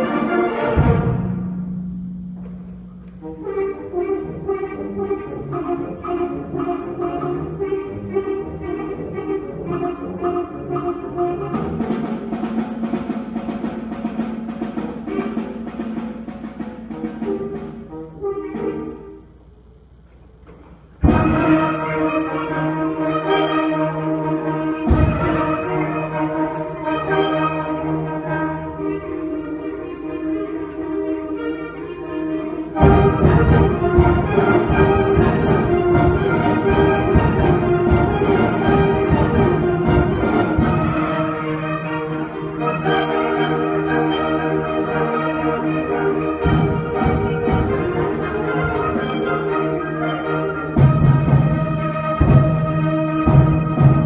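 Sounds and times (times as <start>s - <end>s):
concert band playing: 0.0s - 19.6s, 20.4s - 54.0s.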